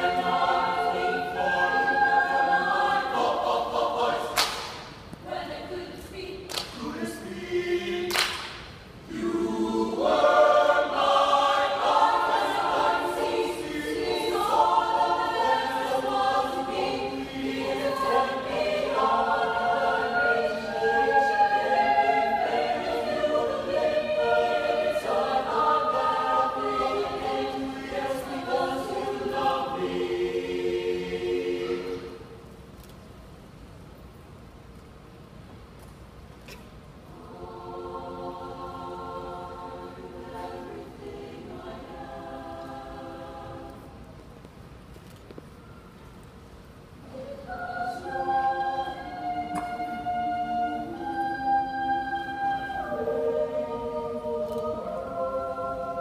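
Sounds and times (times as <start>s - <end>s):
choir singing a cappella: 0.0s - 32.6s, 37.0s - 44.3s, 46.4s - 56.0s.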